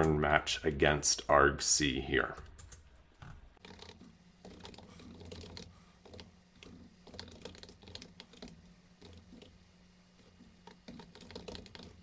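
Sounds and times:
computer keyboard typing: 2.4s - 2.8s, 3.6s - 9.5s, 10.6s - 12.0s.

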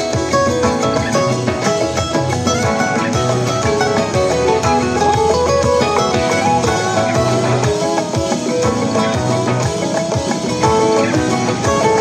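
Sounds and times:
band track with guitar and drums: 0.0s - 12.0s.

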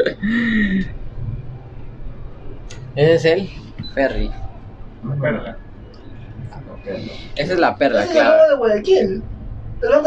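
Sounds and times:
gondola cabin rumble: 0.0s - 10.0s.

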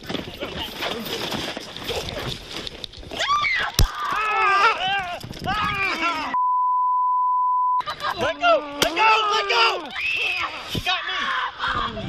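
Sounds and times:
people shouting: 3.2s - 6.4s, 8.2s - 12.0s
sharp crack: 3.7s - 4.3s, 8.8s - 9.9s
high censor bleep: 6.4s - 7.8s.

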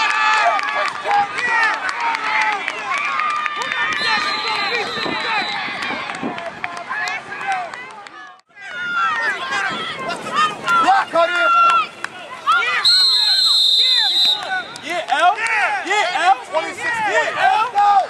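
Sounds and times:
referee's whistle blowing: 3.9s - 5.8s, 12.8s - 14.8s
people shouting: 8.5s - 18.0s.

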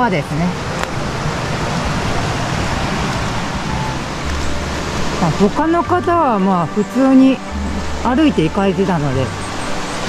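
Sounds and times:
stream rushing over rocks: 0.0s - 10.0s.

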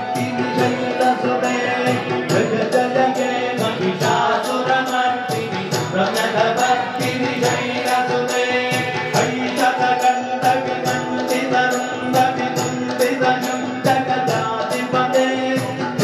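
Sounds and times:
jingling percussion beat: 0.0s - 16.0s.

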